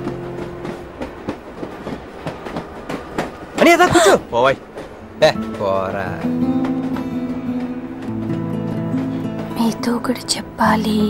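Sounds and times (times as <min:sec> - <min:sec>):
train carriage wheels rattling: 0:00.0 - 0:11.0.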